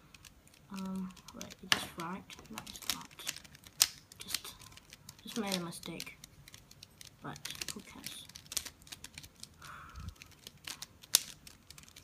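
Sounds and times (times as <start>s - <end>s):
puzzle cube clicking and clacking: 0.0s - 12.0s.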